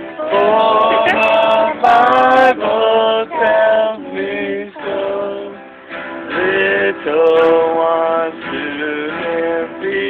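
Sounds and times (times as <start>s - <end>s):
person singing slow melody: 0.0s - 5.6s, 6.2s - 10.0s
acoustic guitar: 0.0s - 10.0s.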